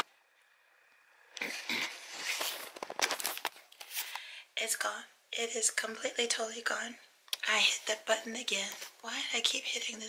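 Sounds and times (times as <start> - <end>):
camera handling rustle: 2.2 - 4.2.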